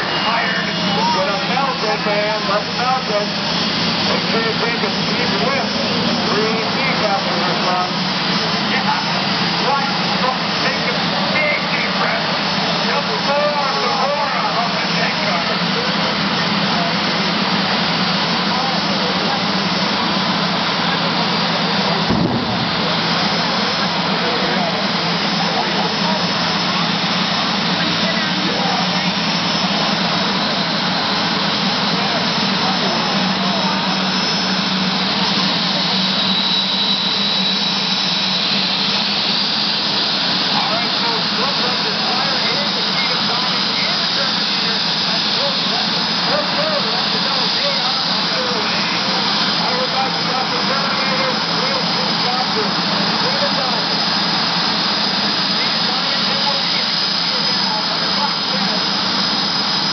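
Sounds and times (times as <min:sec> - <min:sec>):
jet engines roaring with high whine: 0:00.0 - 0:59.9.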